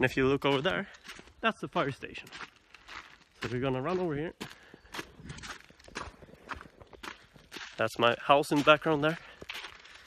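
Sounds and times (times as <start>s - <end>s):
running footsteps: 0.0s - 10.0s.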